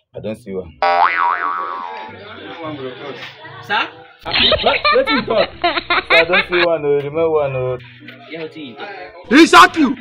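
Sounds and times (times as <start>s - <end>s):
cartoon boing: 0.8s - 2.1s.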